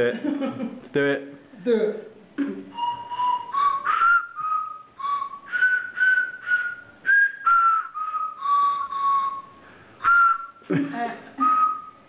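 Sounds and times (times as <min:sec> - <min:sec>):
tune on small tuned whistles: 0:02.7 - 0:10.7, 0:11.4 - 0:12.0.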